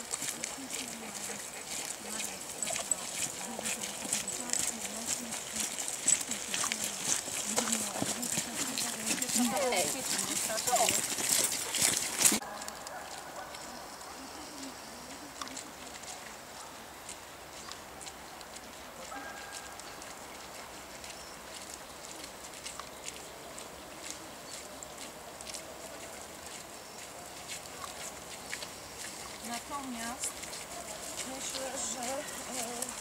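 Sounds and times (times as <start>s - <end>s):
footsteps on wet gravel: 0.0s - 33.0s.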